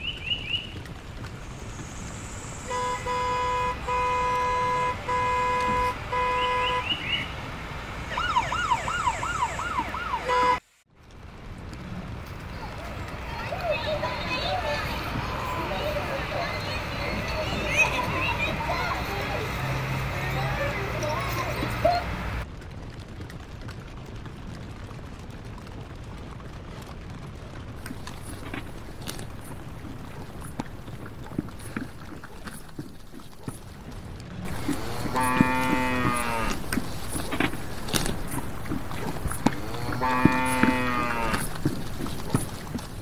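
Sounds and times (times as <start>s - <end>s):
busy background sound: 12.4s - 22.4s
livestock call: 34.5s - 42.4s.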